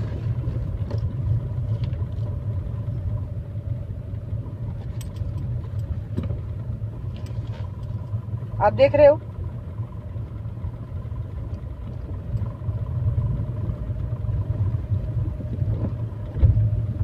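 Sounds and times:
car engine rumble: 0.0s - 17.0s
road noise: 0.0s - 17.0s.

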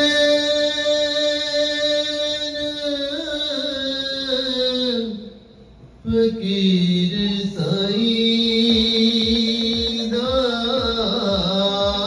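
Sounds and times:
man singing into microphone: 0.0s - 5.4s, 6.0s - 12.0s.

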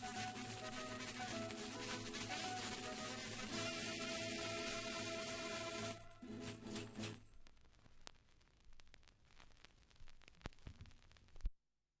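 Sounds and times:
vinyl record surface hiss: 0.0s - 11.6s.

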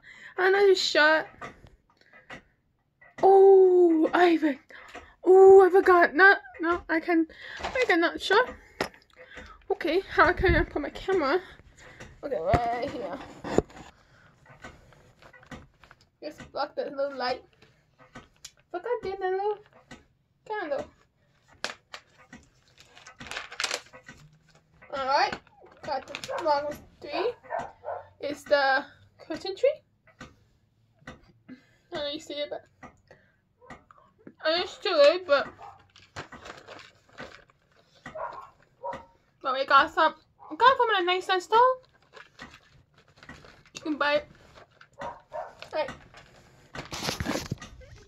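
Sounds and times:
phone handling ticks and rustles: 5.8s - 31.3s, 33.7s - 48.0s.

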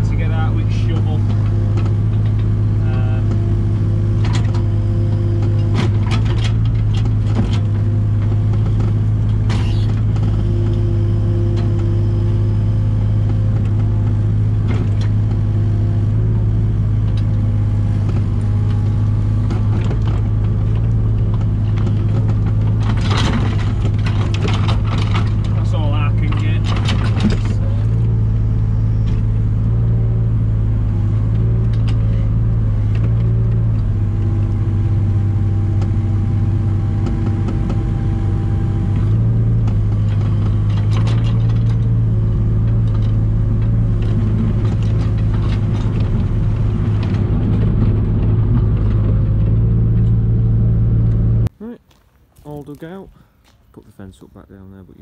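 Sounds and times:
diesel excavator engine running: 0.0s - 55.0s.

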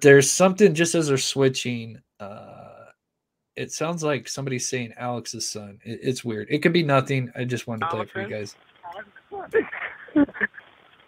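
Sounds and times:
voice over telephone line: 7.8s - 10.6s.

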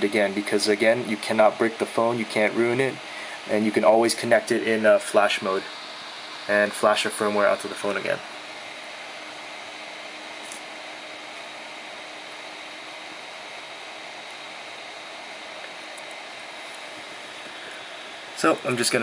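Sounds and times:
room noise hiss: 0.0s - 19.0s.

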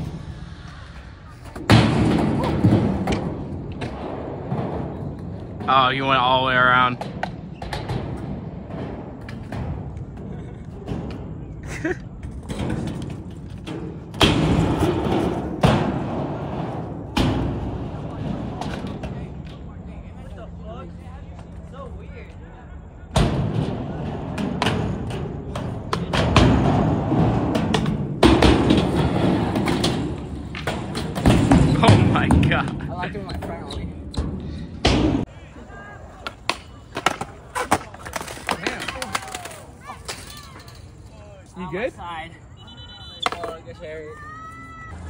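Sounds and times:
skateboard wheels rolling: 0.0s - 45.0s
skateboard thuds: 24.3s - 32.8s, 36.2s - 40.3s, 43.1s - 43.6s.

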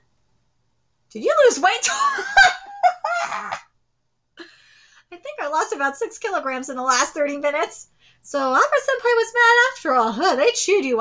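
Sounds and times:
woman laughing hard: 1.8s - 3.6s.

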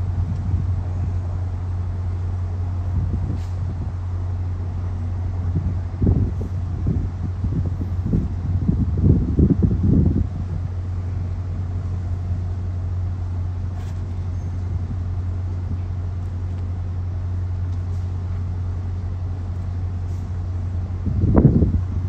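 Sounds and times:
diesel locomotive idling: 0.0s - 22.0s.

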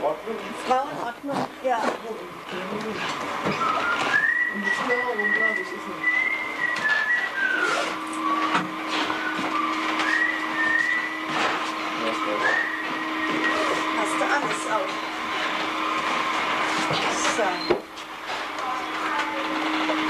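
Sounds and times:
steady hum: 0.0s - 20.0s
person whistling sliding notes: 3.5s - 11.4s, 12.0s - 13.9s.

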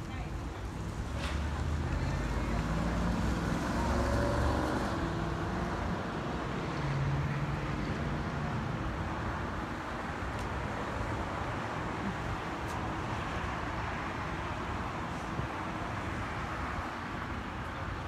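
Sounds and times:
cars driving past: 0.9s - 9.7s.

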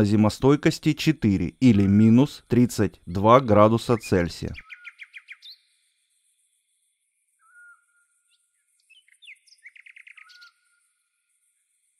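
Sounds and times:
small birds chirping: 0.0s - 11.9s.

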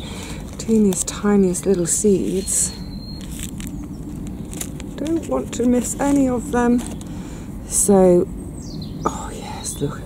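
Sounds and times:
seeds ticking and rustling: 0.0s - 7.1s
low background rumble: 0.0s - 10.0s.

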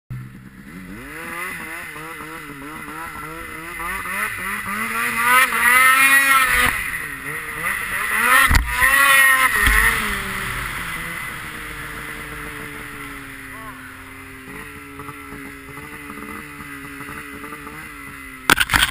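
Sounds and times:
snowmobile engine revving: 0.1s - 18.9s
sharp thump: 8.3s - 9.0s, 9.6s - 10.1s.

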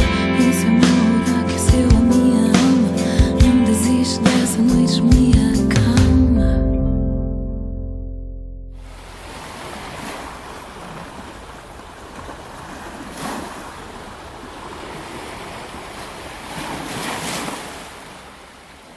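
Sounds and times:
ocean surf on a beach: 8.8s - 18.9s.

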